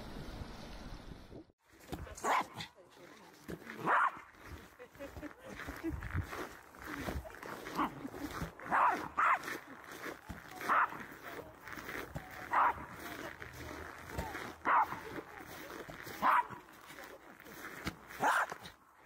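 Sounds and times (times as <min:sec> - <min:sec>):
background voices: 0:01.8 - 0:18.3
small dog barking: 0:02.2 - 0:02.7, 0:03.8 - 0:04.3, 0:08.6 - 0:09.6, 0:10.6 - 0:11.1, 0:12.4 - 0:13.0, 0:14.6 - 0:15.2, 0:16.1 - 0:16.6, 0:18.2 - 0:18.7.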